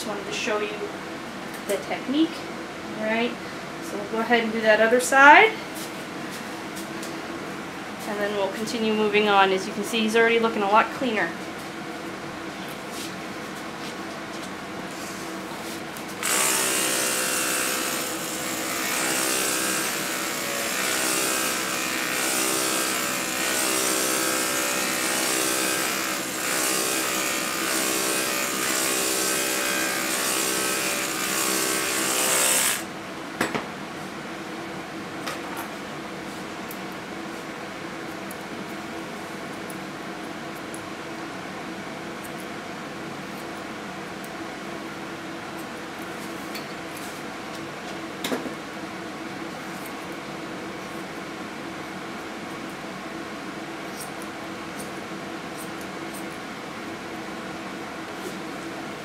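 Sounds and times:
electric clippers humming: 16.2 - 32.9.

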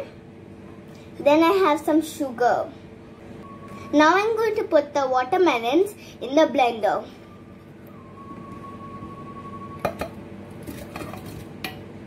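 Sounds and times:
metal kitchenware clinking: 9.8 - 11.8.

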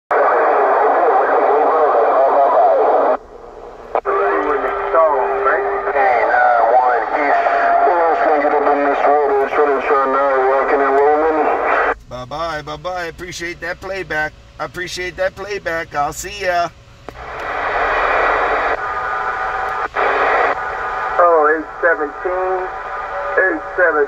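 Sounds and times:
garbled radio voices: 0.1 - 24.0
radio static: 0.1 - 24.0
radio click: 3.8 - 6.2, 8.2 - 12.0, 17.0 - 20.8, 21.7 - 22.9.

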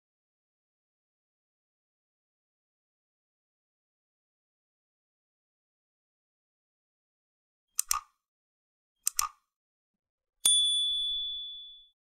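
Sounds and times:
bright bell ding: 10.5 - 12.0.

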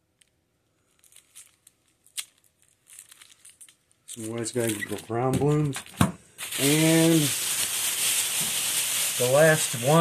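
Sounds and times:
plastic wrap crinkling: 0.8 - 10.0.

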